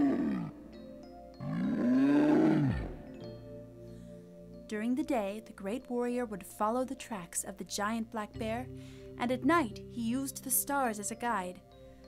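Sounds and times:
bear roaring: 0.0s - 0.8s, 1.4s - 3.1s
soft background music: 0.0s - 12.0s.

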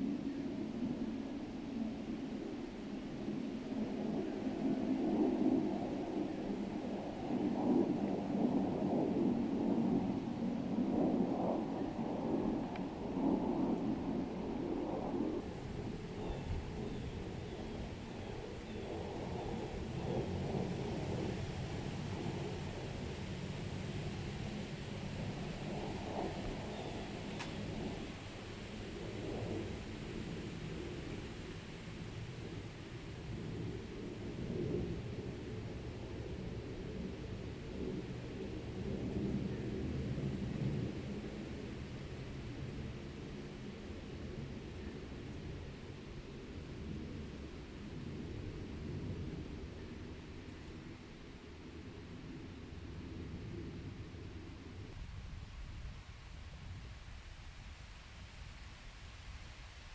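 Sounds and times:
wind rumble on microphone: 0.0s - 59.9s.

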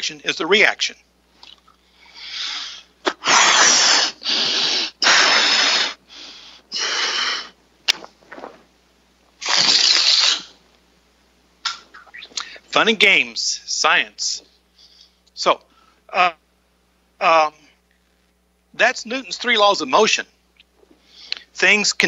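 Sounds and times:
breaths blowing up balloon: 2.0s - 8.6s, 9.4s - 10.5s.

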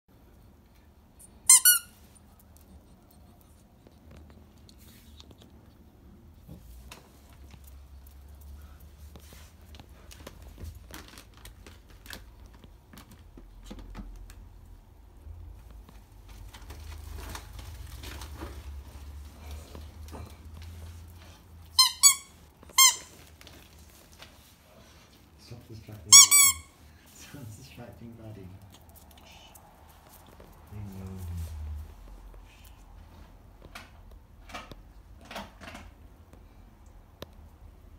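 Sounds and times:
squeaky toy squeaks: 1.4s - 2.0s, 21.7s - 23.2s, 26.1s - 26.8s.

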